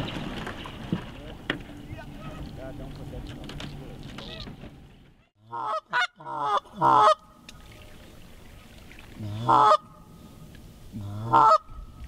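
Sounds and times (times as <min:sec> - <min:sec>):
geese honking: 0:03.9 - 0:07.8, 0:09.2 - 0:10.0, 0:11.0 - 0:11.8.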